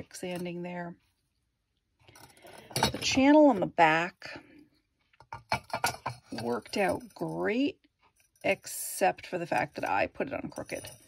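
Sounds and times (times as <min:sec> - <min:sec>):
person speaking: 0:00.0 - 0:01.0, 0:02.6 - 0:04.4, 0:06.3 - 0:07.8, 0:08.4 - 0:11.0.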